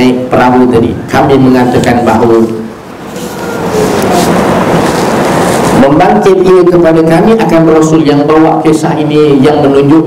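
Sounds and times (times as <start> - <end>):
loud rushing noise: 2.0 - 7.1.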